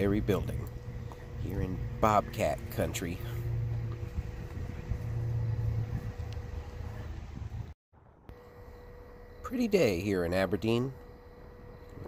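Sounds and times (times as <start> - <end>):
low hum: 0.0 - 12.0
low outdoor rumble: 0.0 - 12.0.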